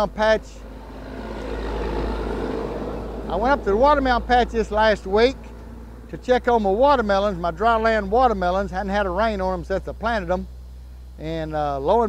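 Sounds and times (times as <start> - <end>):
vehicle passing with rushing noise: 0.5 - 7.7
steady low rumble: 0.6 - 11.3.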